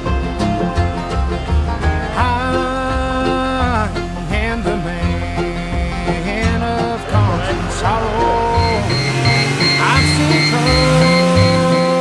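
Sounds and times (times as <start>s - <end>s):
country music with plucked bass: 0.0s - 12.0s.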